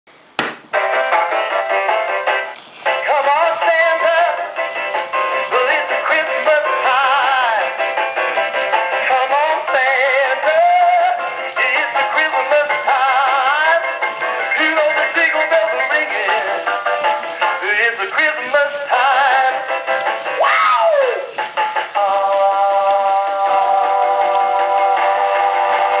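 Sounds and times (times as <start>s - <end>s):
song through small speaker: 0.7s - 26.0s
man singing: 2.9s - 4.6s, 5.5s - 7.8s, 8.9s - 16.7s, 17.5s - 26.0s.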